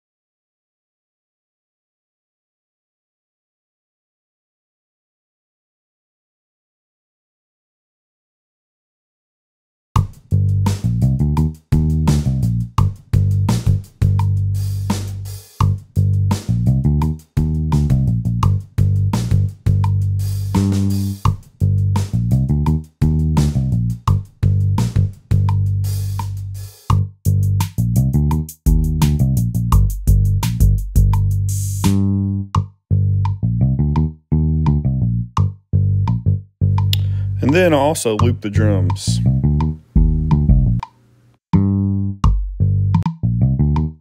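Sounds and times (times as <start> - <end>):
drum kit with busy hi-hat: 10.0 - 32.1, 36.8 - 40.9, 42.2 - 43.2
bass guitar line: 10.0 - 40.8, 41.6 - 44.0.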